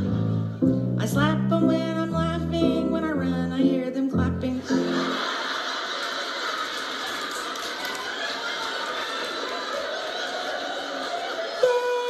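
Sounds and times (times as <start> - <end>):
piano chords: 0.0 - 5.5
audience applauding: 4.9 - 12.0.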